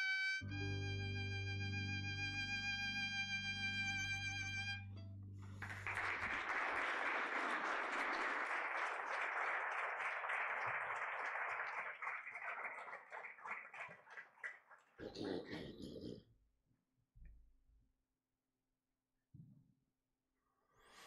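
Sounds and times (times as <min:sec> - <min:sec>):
crowd applauding: 0:05.4 - 0:15.2.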